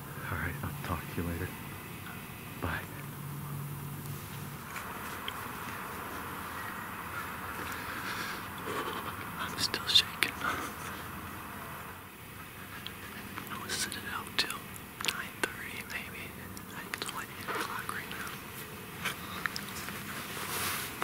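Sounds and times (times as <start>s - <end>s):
man whispering: 0.0s - 3.1s, 8.8s - 10.9s, 12.6s - 18.4s.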